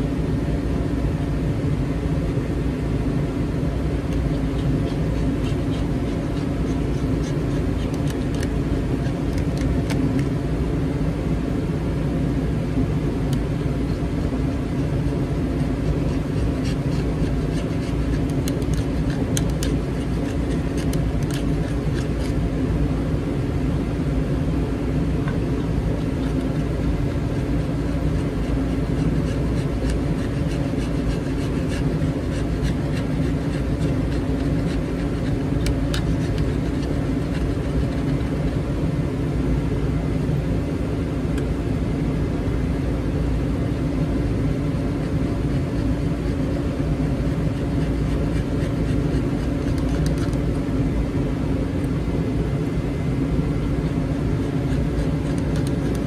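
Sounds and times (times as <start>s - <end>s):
mechanical hum and whir: 0.0s - 56.0s
faint ticks and scratches: 4.1s - 10.3s, 13.3s - 22.5s, 25.3s - 38.7s, 44.6s - 50.7s, 54.2s - 56.0s.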